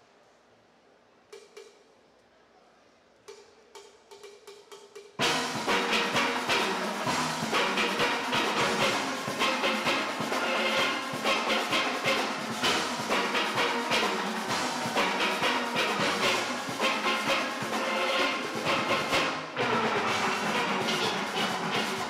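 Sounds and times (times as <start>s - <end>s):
percussion: 1.2s - 2.2s, 3.2s - 22.0s
steel pans playing: 5.2s - 22.0s.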